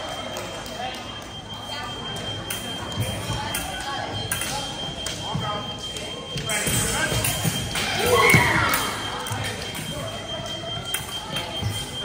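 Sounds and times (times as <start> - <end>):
echoing gym hall hubbub: 0.0 - 12.0.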